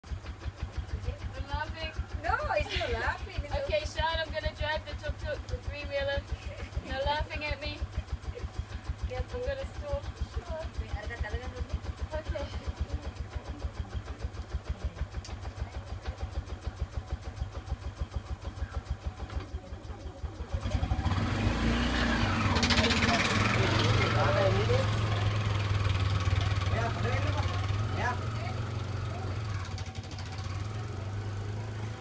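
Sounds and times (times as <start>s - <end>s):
small engine idling and revving: 0.0s - 32.0s.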